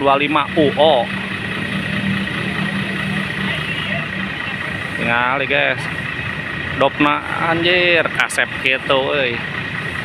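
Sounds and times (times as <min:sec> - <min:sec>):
bus diesel engine idling: 0:00.0 - 0:10.0.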